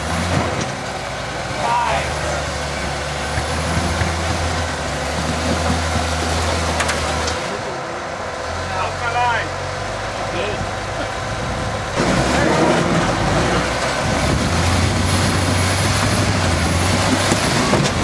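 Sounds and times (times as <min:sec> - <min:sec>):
engine running under load: 0:00.0 - 0:18.0.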